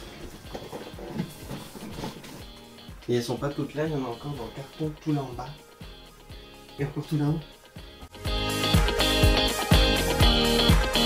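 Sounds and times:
quiet background music: 0.0s - 11.0s
cardboard box knocks and scuffs: 0.5s - 2.5s.

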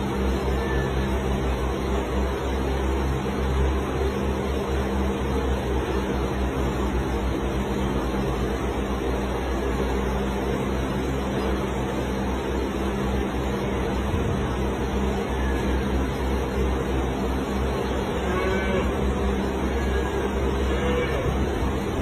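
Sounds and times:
mechanical hum with hiss: 0.0s - 22.0s.

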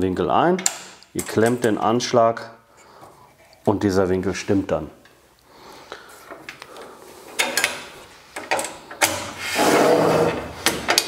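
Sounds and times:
sliding table rubbing: 9.1s - 11.0s.

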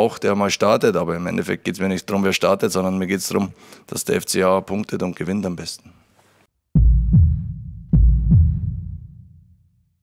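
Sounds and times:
deep heartbeat-like thumps: 6.8s - 9.5s.

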